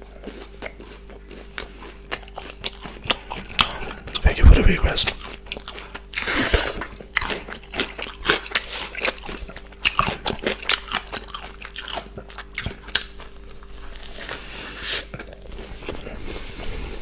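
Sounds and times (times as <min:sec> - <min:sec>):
crunchy chewing: 0:00.0 - 0:17.0.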